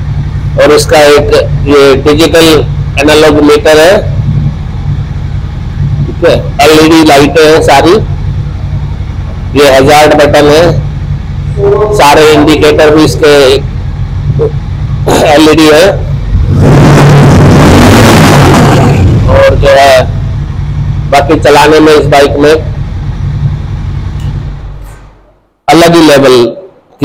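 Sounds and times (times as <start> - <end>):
motorcycle engine idling: 0.0 - 16.5, 19.4 - 25.3.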